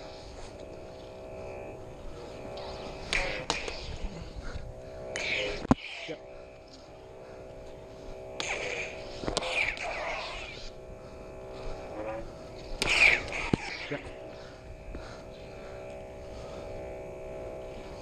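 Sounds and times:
lightsaber electronic hum: 0:00.0 - 0:18.0
lightsaber clash effects: 0:02.6 - 0:04.1, 0:05.1 - 0:06.2, 0:08.4 - 0:10.7, 0:12.8 - 0:14.2
lightsaber swing whooshes: 0:05.1 - 0:06.1, 0:08.4 - 0:10.7, 0:12.8 - 0:14.0.

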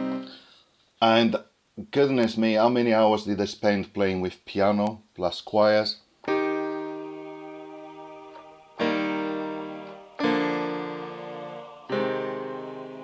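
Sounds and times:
piano and choir chords: 0:06.3 - 0:13.0.

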